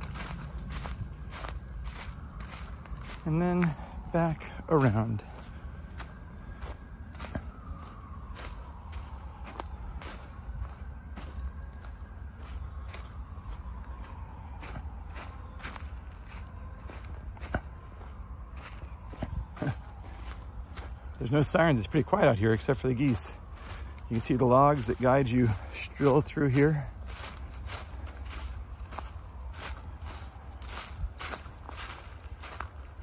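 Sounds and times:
footsteps crunching through dry leaves: 0.0s - 33.0s.

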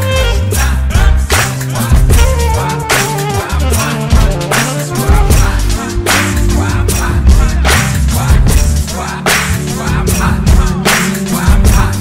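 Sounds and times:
deep bass line: 0.0s - 12.0s.

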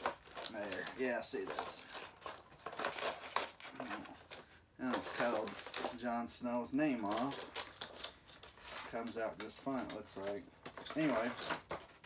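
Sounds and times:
plastic packaging crackling: 0.0s - 12.0s.

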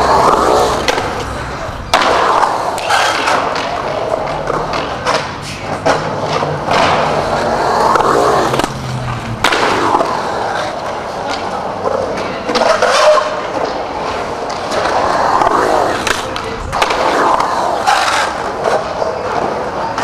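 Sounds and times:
skateboard clacking on concrete: 0.0s - 20.0s
skateboard wheels rolling on concrete: 0.0s - 20.0s.

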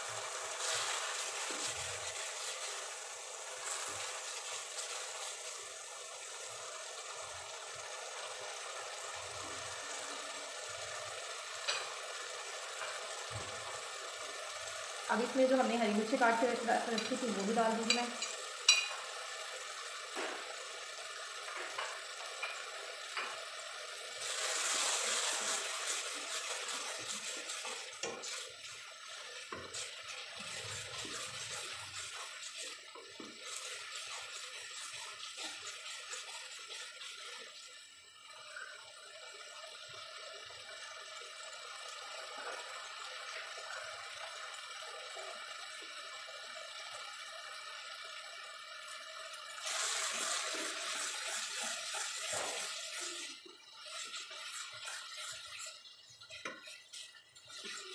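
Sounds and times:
lentils frying with a hiss: 0.0s - 57.9s
spatula scraping a pot: 29.5s - 37.6s, 53.9s - 57.9s.

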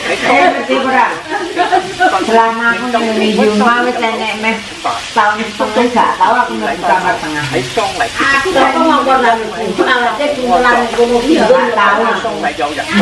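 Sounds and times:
food sizzling in a grill pan: 0.0s - 13.0s
voices talking: 0.0s - 13.0s.

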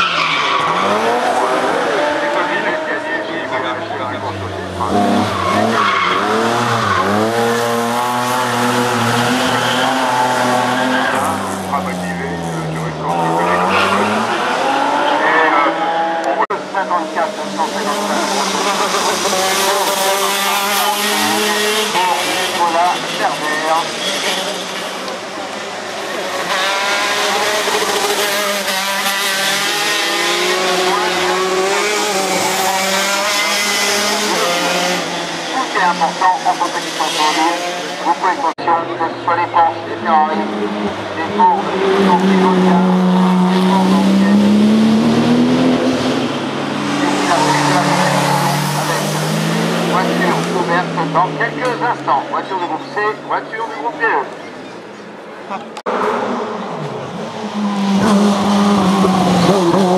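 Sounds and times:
racing car engines revving: 0.0s - 59.9s.

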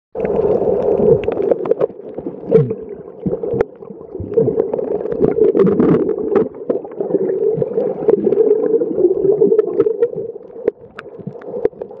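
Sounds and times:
clicks and crackles: 0.2s - 7.1s, 9.6s - 12.0s
low underwater hum: 0.2s - 12.0s.

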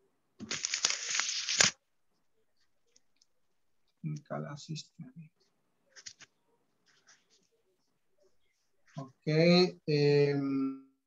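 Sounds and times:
rustling crinkling noise: 0.4s - 1.8s, 5.9s - 7.7s.

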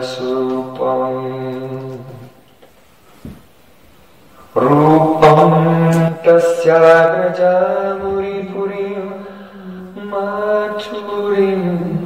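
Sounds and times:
man chanting a prayer: 4.5s - 12.0s.

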